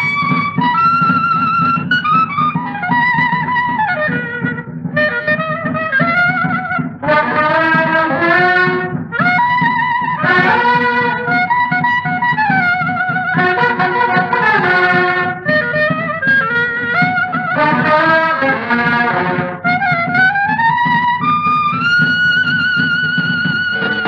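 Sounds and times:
boogie-woogie dance orchestra: 0.0s - 24.0s.

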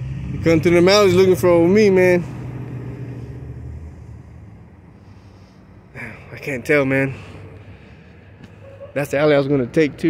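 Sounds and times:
vehicle engine rumble: 0.0s - 10.0s.

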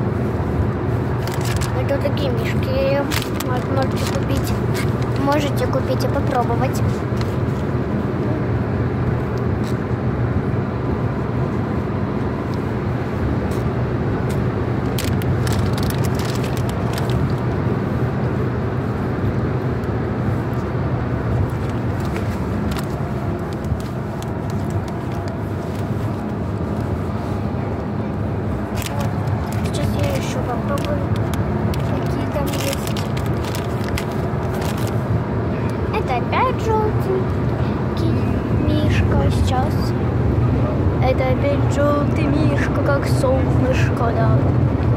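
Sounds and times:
car engine and road noise: 0.0s - 44.9s
plastic bag crinkling: 1.2s - 1.8s, 3.0s - 5.4s, 14.9s - 17.4s, 21.6s - 25.9s, 28.7s - 35.0s.

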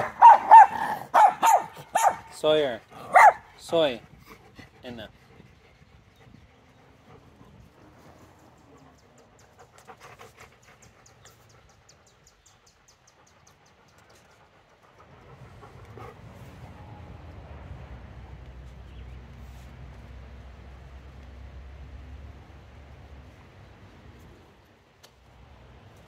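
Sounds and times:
dog panting: 0.0s - 16.7s.

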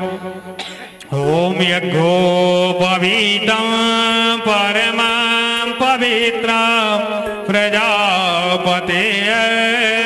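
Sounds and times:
person chanting mantras: 0.0s - 10.0s.

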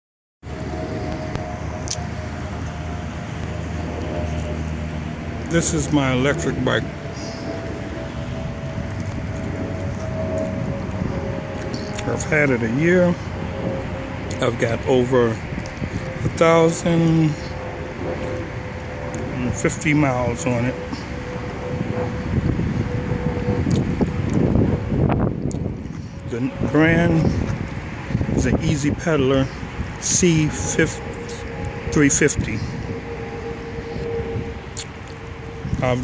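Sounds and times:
wind noise on microphone: 0.5s - 36.0s.

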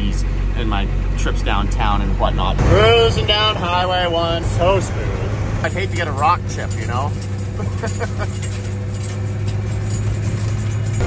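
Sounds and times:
car engine cruising drone: 0.0s - 11.0s
road noise: 0.0s - 11.0s.

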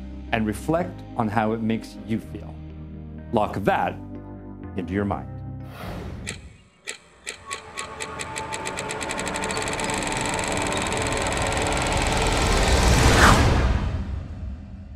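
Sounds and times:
accelerating electronic clicks: 6.2s - 13.2s
rising whoosh: 11.2s - 14.9s.

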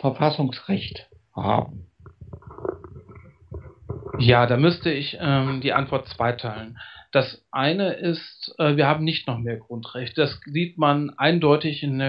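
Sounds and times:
faint clicking and crackling: 0.7s - 6.9s.

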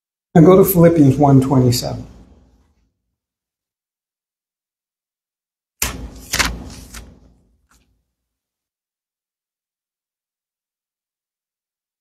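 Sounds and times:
thin pages being turned: 5.8s - 8.0s.

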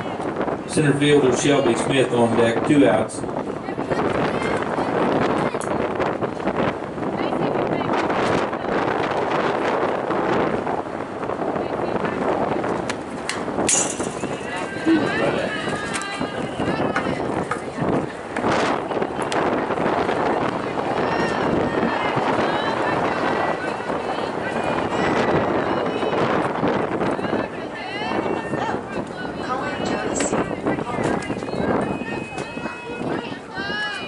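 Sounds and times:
crowd babble: 0.0s - 34.0s
sharp crack: 13.7s - 14.4s.

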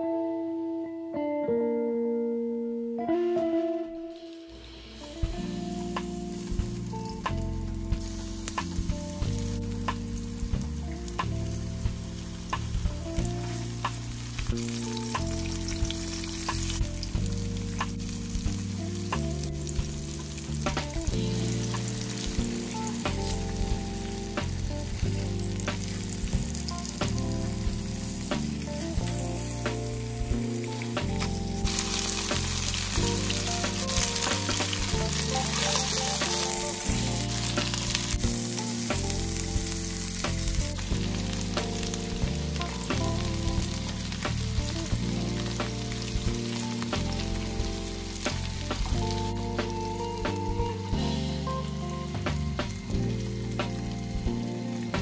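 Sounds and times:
chicken sizzling in oil: 4.4s - 55.0s.

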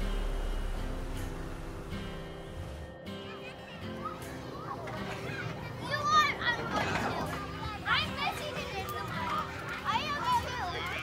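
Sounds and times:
young children calling and babbling: 3.0s - 11.0s.

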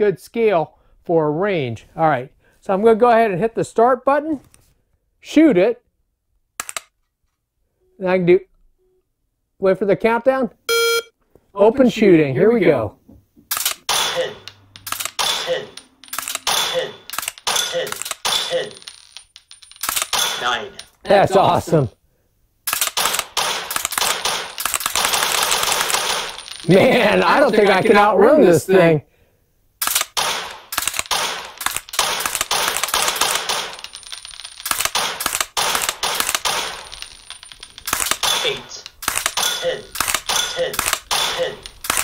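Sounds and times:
sharp mechanical rifle clicks: 6.6s - 6.9s, 13.5s - 18.5s, 19.8s - 20.4s, 22.7s - 26.2s, 29.8s - 33.9s, 34.6s - 37.1s, 37.8s - 42.0s.

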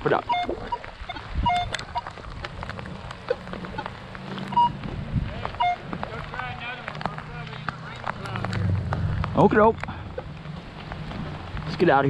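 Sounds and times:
footsteps crunching on wood chips: 0.1s - 12.0s
metal detector beeps: 0.2s - 2.1s, 4.5s - 4.8s, 5.6s - 5.8s.

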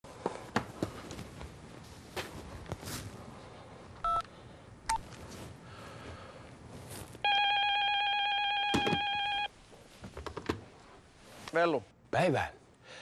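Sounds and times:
phone keypad beeps: 4.0s - 4.2s
telephone electronic ring: 7.2s - 9.5s.

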